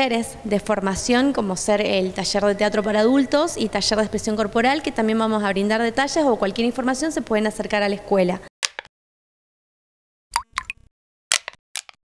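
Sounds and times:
cartoon water-drop plops: 0:10.3 - 0:10.9.

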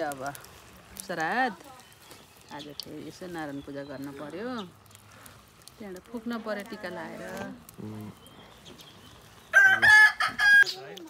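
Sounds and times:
rooster crowing: 0:09.5 - 0:10.8.

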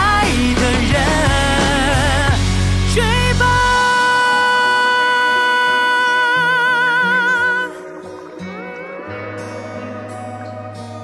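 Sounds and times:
man singing long high note: 0:00.0 - 0:10.0
sparse backing music: 0:00.0 - 0:11.0.

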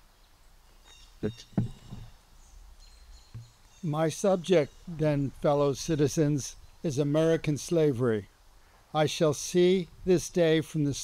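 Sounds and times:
faint outdoor background noise: 0:00.0 - 0:11.0
man speaking: 0:03.8 - 0:08.3, 0:09.0 - 0:11.0.

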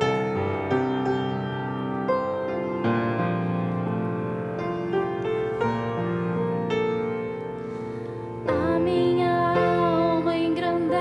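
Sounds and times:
solo grand piano: 0:00.0 - 0:11.0.

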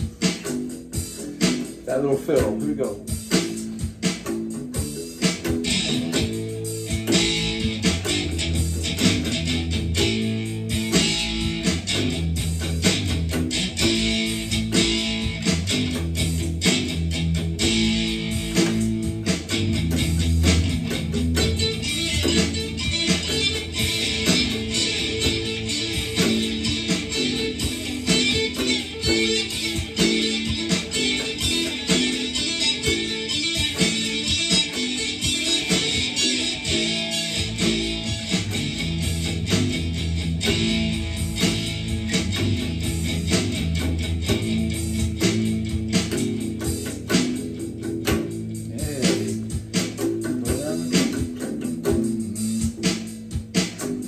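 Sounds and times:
bass guitar low notes: 0:00.0 - 0:54.0
electric guitar strumming: 0:00.0 - 0:54.0.

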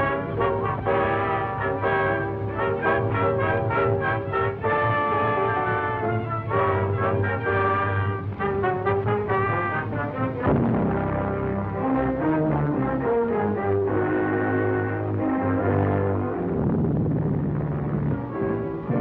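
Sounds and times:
orchestral title music with brass: 0:00.0 - 0:19.0.

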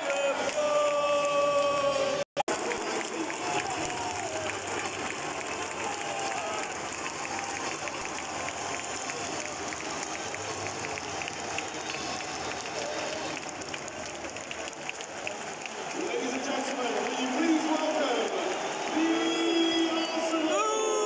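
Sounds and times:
scattered clapping: 0:00.0 - 0:20.6
crowd voices din: 0:00.0 - 0:21.0
voices carrying above crowd: 0:00.0 - 0:21.0.

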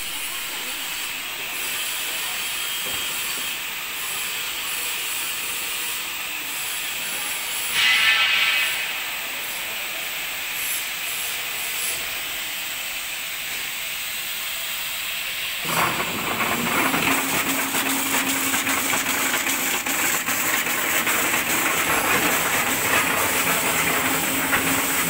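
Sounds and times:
factory machinery hissing: 0:00.0 - 0:25.0.

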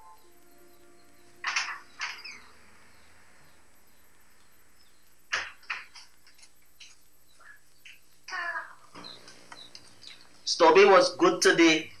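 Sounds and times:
faint steady hiss: 0:00.0 - 0:12.0
bird harsh calls: 0:00.8 - 0:04.1.

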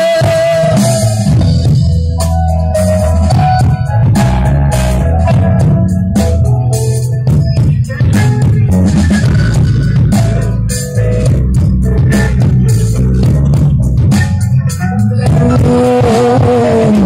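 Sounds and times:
drum kit: 0:00.0 - 0:17.0
electric bass guitar: 0:00.0 - 0:17.0
electric guitar: 0:00.0 - 0:17.0.

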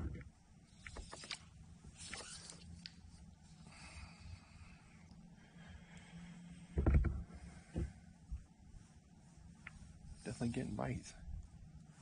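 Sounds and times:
dull thumps: 0:06.6 - 0:08.5.

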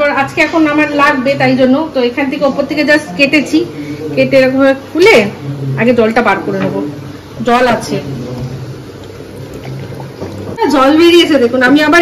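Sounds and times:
liquid trickling into glass: 0:08.3 - 0:10.6.

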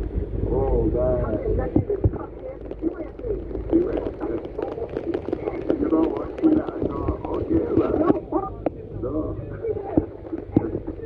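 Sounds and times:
heavy rain: 0:00.0 - 0:11.0
vehicle driving on wet road: 0:01.3 - 0:11.0.

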